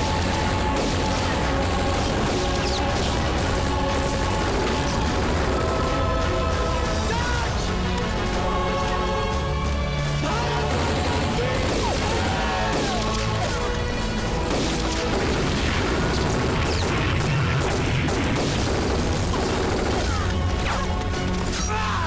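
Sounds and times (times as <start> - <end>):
gunfire bursts: 0.0 - 6.3, 10.3 - 21.5
explosions: 0.0 - 6.7, 14.3 - 20.3
orchestral music score: 0.0 - 22.0
soldiers shouting: 5.6 - 9.0, 10.1 - 14.0, 19.8 - 22.0.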